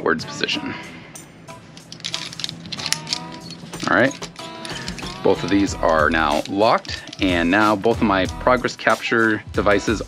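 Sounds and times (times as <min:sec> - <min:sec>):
carabiners clinking and clicking: 0:01.7 - 0:07.8.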